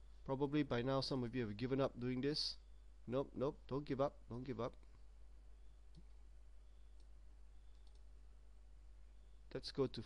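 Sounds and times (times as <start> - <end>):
computer mouse clicks: 6.9 - 8.1.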